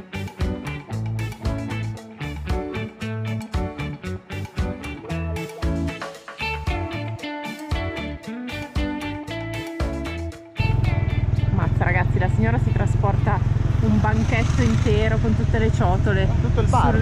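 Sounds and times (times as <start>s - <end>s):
plucked guitar music: 0.0s - 13.3s
motorbike engine rumble: 10.7s - 17.0s.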